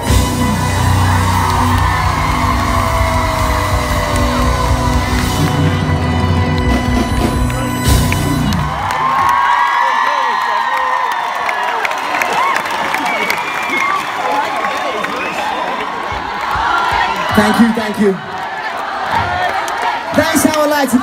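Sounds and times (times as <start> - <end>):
audience singing and shouting along: 0.0 - 8.8, 15.9 - 20.2
live band playing: 0.0 - 9.3
crowd cheering and whooping: 0.0 - 20.1.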